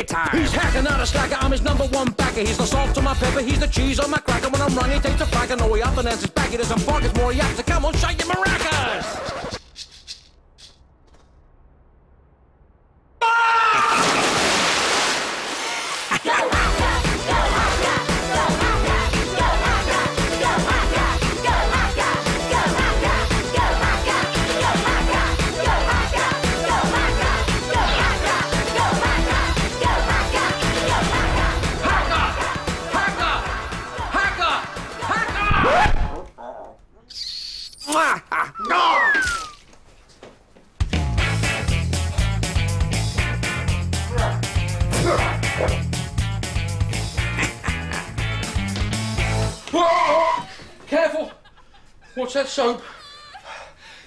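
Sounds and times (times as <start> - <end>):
maracas rattling: 9.5 - 10.8
people grunting: 16.1 - 18.8, 44.0 - 45.8
falling whistle-like tone: 38.9 - 39.6.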